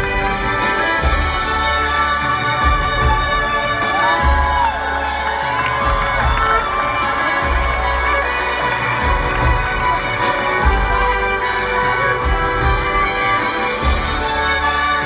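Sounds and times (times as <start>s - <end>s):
string ensemble and piano: 0.0s - 15.0s
crowd cheering and whooping: 2.8s - 11.2s.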